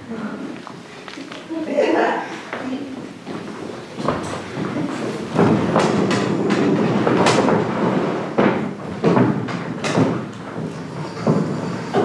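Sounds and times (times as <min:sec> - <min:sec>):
footsteps: 0:00.2 - 0:12.0
metal chairs scraping on wooden floor: 0:02.1 - 0:12.0
chairs knocking: 0:02.5 - 0:12.0.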